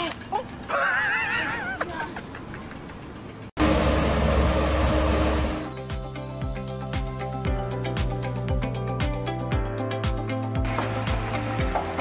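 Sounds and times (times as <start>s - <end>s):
person shrieking with laughter: 0.7s - 2.1s
low engine-like drone: 2.7s - 5.8s.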